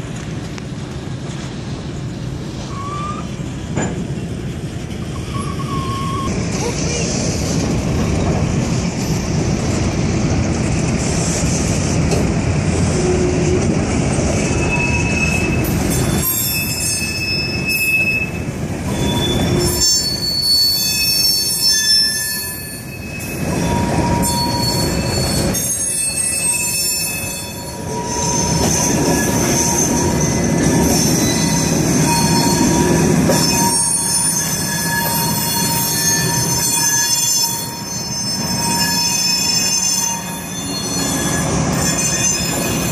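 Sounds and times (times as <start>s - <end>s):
train wheels rumbling on rail: 0.0s - 42.9s
metal wheels squealing: 5.1s - 6.3s, 14.4s - 42.9s.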